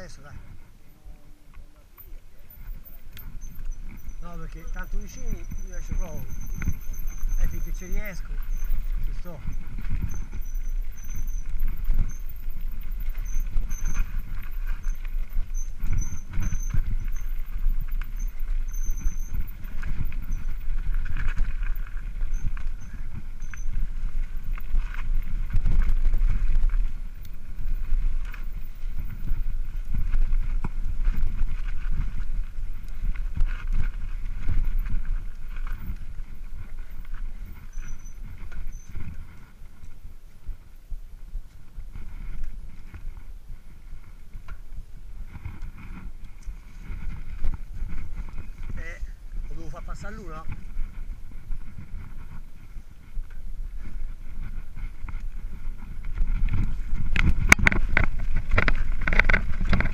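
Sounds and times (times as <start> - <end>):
bike frame rattling: 0.0 - 40.8, 41.5 - 59.9
bike tyres rumbling on dirt: 0.0 - 59.9
low rumble on microphone: 0.0 - 59.9.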